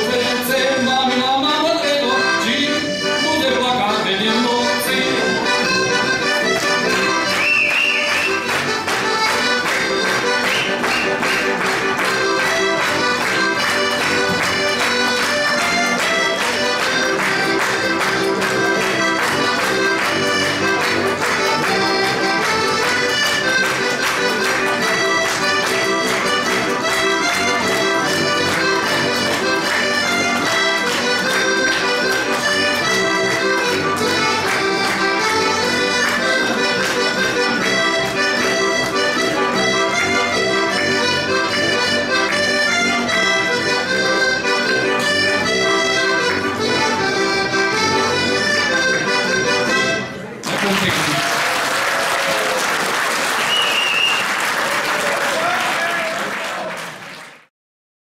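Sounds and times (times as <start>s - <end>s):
button accordion playing chords: 0.0s - 50.8s
audience applause: 7.3s - 32.7s, 50.4s - 57.5s.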